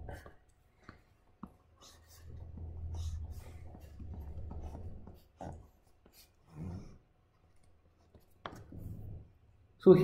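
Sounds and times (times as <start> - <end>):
stylus scratching on tablet: 1.0 - 7.0.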